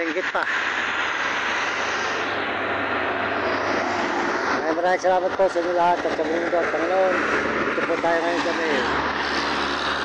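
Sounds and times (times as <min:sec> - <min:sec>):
road traffic rushing: 0:00.0 - 0:10.0.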